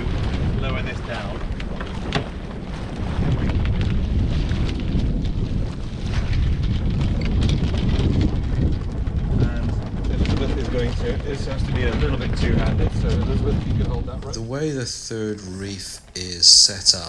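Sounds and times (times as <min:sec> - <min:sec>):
clicks and rustles: 0:00.0 - 0:14.4
wind buffeting microphone: 0:00.0 - 0:17.0.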